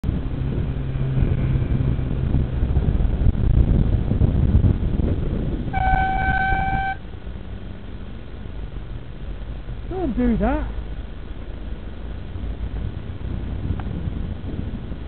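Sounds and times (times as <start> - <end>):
road traffic rumble: 0.0 - 15.0
wind noise: 0.0 - 15.0
horn blast: 5.7 - 7.0.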